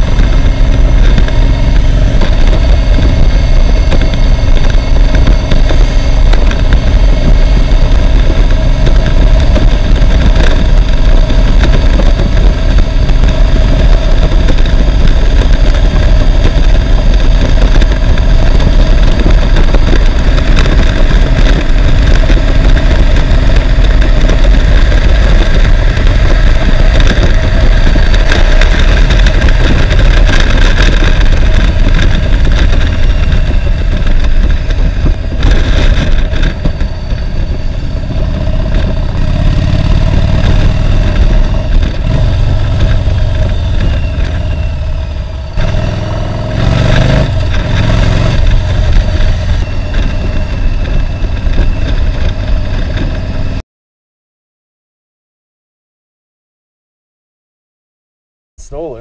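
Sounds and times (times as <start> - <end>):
motorcycle engine revving: 0.0 - 53.6
wind rushing over microphone: 0.0 - 53.6.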